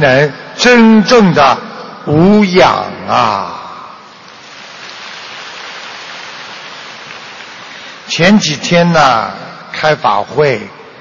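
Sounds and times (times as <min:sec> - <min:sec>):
audience applause: 0:04.4 - 0:08.2.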